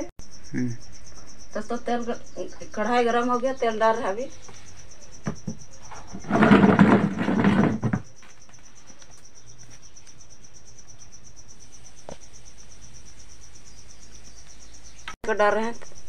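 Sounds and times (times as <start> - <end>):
high insect trill: 0.0 - 16.0.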